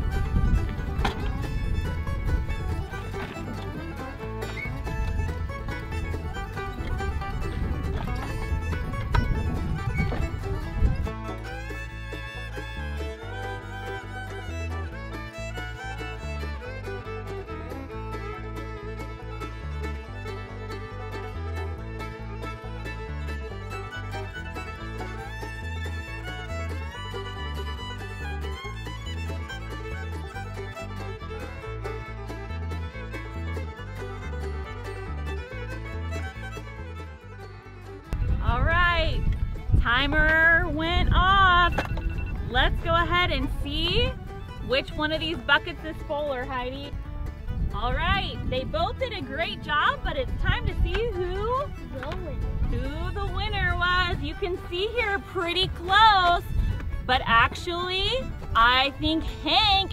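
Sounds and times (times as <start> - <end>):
rough rumble: 0.0 - 59.9
upbeat fiddle music: 0.0 - 59.9.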